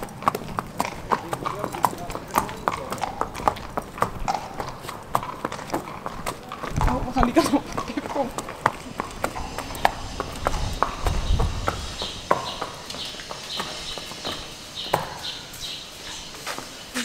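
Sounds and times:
hooves on brick paving: 0:00.0 - 0:17.0.

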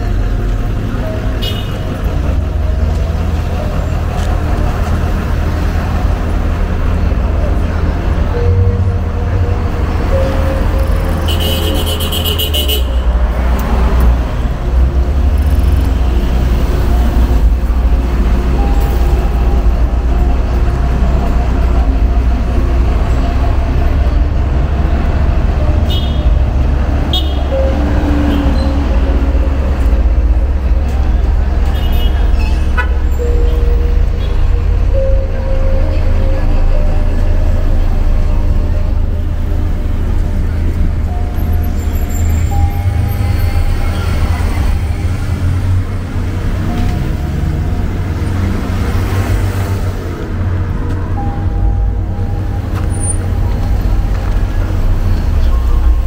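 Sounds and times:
cars passing: 0:00.0 - 0:56.0
low traffic rumble: 0:00.0 - 0:56.0.

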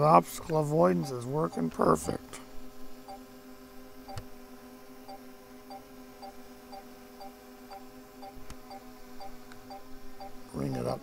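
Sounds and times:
faint controller beeps: 0:01.0 - 0:02.2, 0:03.0 - 0:03.3, 0:05.0 - 0:11.0.

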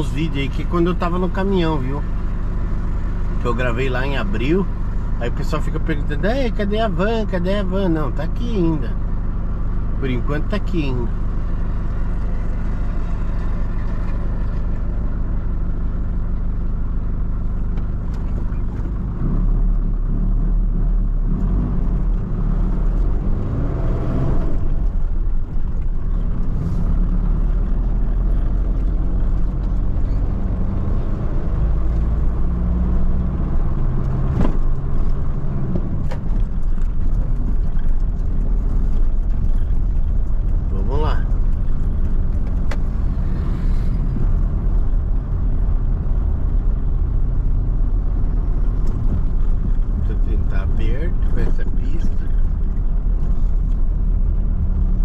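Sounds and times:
road noise: 0:00.0 - 0:55.0
van diesel engine driving: 0:00.0 - 0:55.0.

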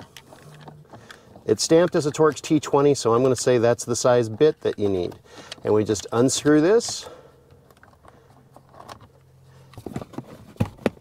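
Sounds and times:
screwdriver handling on plastic: 0:04.3 - 0:11.0.

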